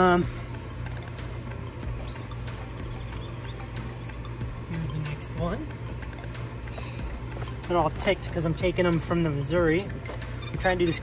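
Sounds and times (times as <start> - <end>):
steady low hum: 0.0 - 11.0
footsteps on dirt and grass: 5.7 - 11.0.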